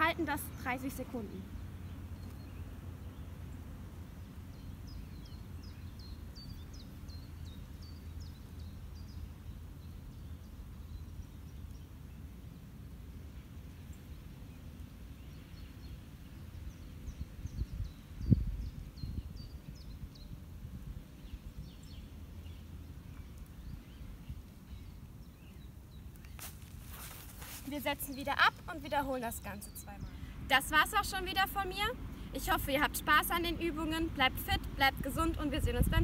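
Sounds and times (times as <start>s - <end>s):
bird chirping: 4.1s - 12.0s.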